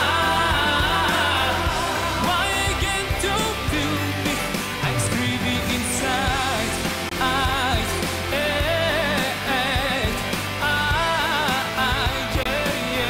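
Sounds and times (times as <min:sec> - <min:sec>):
band playing with bass line: 0:00.0 - 0:13.0
man singing into microphone: 0:00.0 - 0:13.0.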